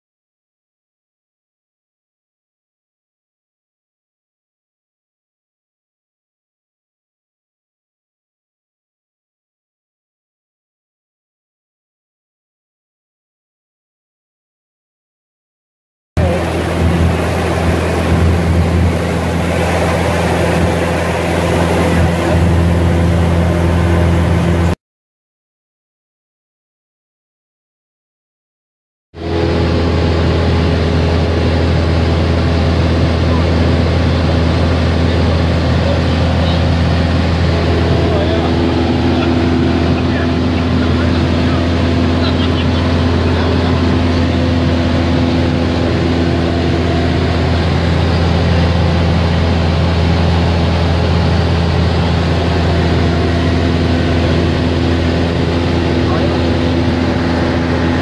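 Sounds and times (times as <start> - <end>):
propeller plane engine droning: 16.2 - 24.8, 29.2 - 58.0.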